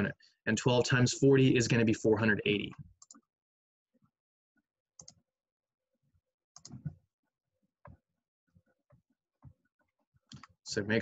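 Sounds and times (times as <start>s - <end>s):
computer mouse clicks and taps: 5.0s - 5.2s, 6.6s - 7.0s, 8.9s - 10.6s.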